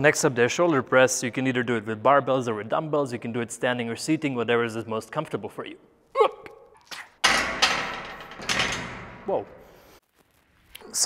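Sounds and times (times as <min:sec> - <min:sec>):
barbell clanking: 0:07.2 - 0:09.4.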